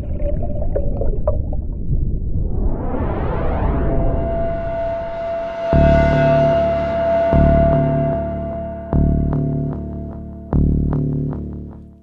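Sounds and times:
deep steady rumble: 0:00.0 - 0:11.7
sonar-like blips: 0:02.4 - 0:10.8
wavering held tone: 0:02.6 - 0:11.0.

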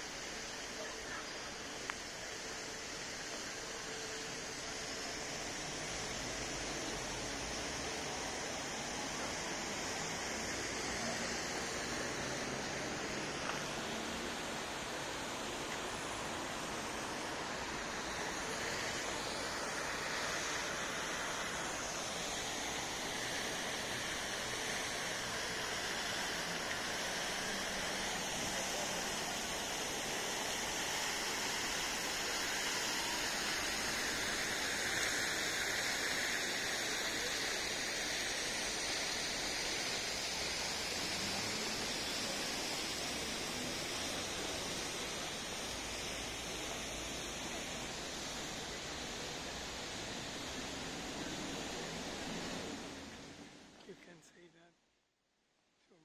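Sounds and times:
outdoor city ambience: 0:00.0 - 0:56.0.

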